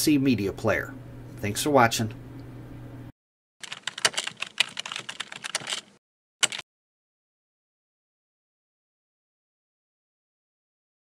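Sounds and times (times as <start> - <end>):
keyboard key clicks: 3.6 - 6.6.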